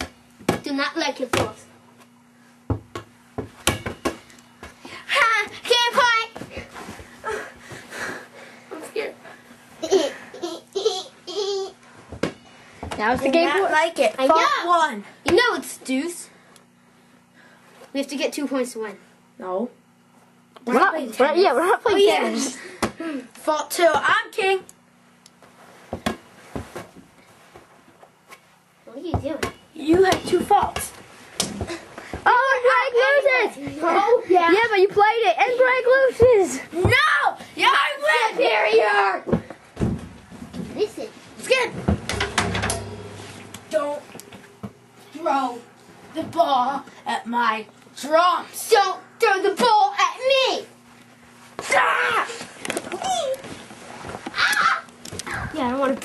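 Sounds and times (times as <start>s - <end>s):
children's excited voices and shouts: 36.4s - 39.3s
knocking: 41.8s - 44.8s.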